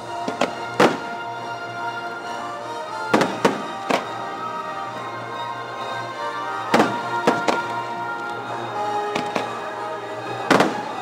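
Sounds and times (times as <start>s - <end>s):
orchestral music: 0.0s - 11.0s
fireworks bangs: 0.1s - 1.2s, 3.1s - 4.3s, 6.7s - 7.9s, 9.1s - 9.7s, 10.4s - 11.0s.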